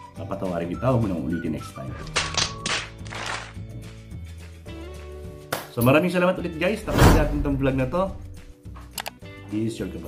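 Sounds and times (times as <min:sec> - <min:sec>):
background music low notes: 0:00.0 - 0:10.0.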